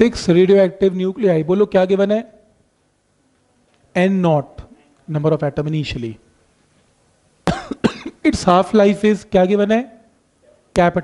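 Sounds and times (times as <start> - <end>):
man talking: 0.0 - 2.4, 4.0 - 6.2, 8.2 - 10.1
man coughing: 7.5 - 8.3.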